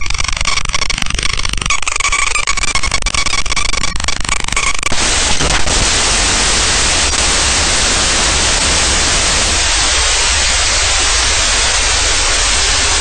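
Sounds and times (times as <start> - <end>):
loud static hiss: 4.8 - 13.0.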